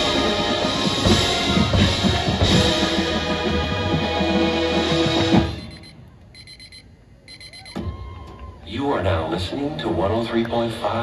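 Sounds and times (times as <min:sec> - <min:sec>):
alarm clock beeping: 0:05.6 - 0:07.8.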